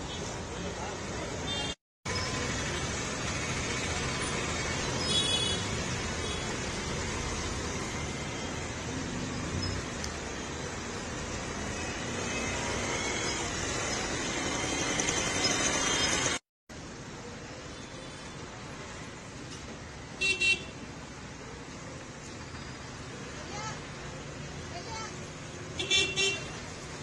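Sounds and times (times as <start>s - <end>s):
road traffic noise: 0.0s - 27.0s.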